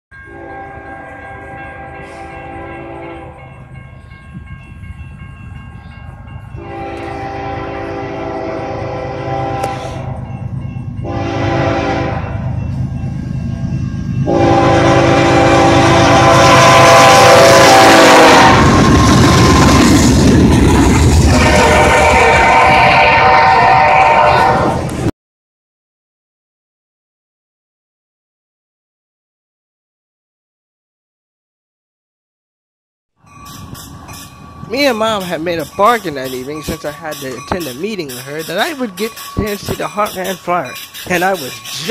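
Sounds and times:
train engine and wheels rumbling: 0.1s - 25.1s, 33.2s - 41.9s
locomotive air horn: 0.3s - 3.5s, 6.6s - 10.2s, 11.0s - 12.4s, 14.3s - 19.9s, 21.2s - 25.1s.

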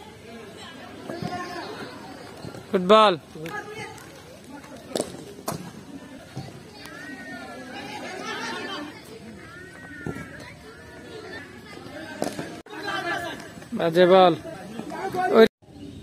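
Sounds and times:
children chattering and calling: 0.0s - 16.0s.

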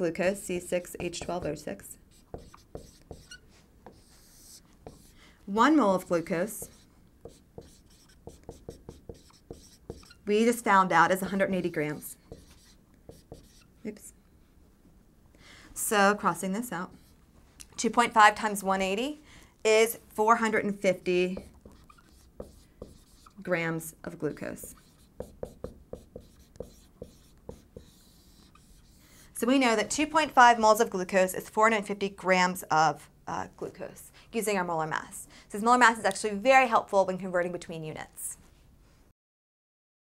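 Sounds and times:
marker writing on whiteboard: 0.8s - 5.2s, 6.0s - 10.3s, 11.2s - 13.8s, 16.9s - 17.2s, 21.3s - 23.4s, 24.3s - 29.3s.

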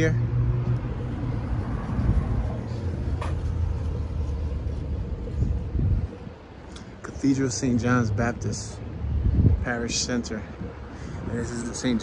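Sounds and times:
vehicle engine running: 0.0s - 6.4s
city street traffic rumble: 0.0s - 12.0s.

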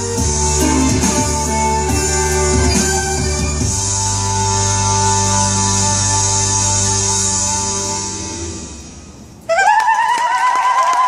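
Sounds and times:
scattered applause: 9.5s - 11.0s.

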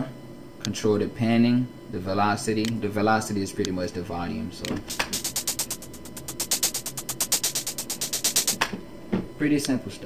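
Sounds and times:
programmed hi-hat pattern: 4.7s - 8.8s.

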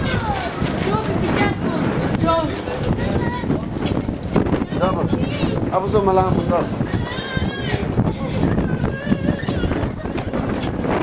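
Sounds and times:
child's high-pitched squeal: 8.4s - 10.7s.

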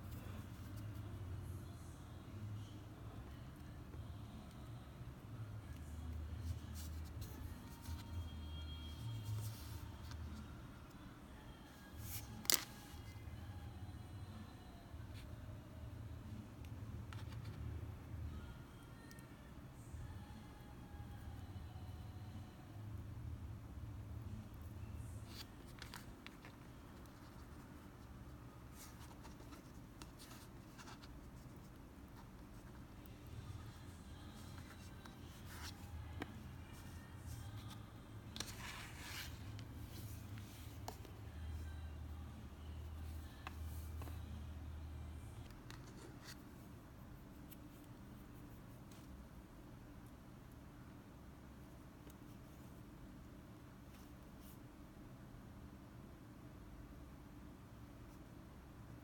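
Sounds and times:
low steady hum: 0.0s - 59.0s.

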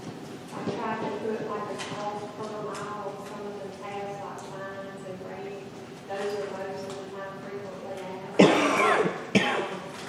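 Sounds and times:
person coughing: 8.4s - 9.9s.

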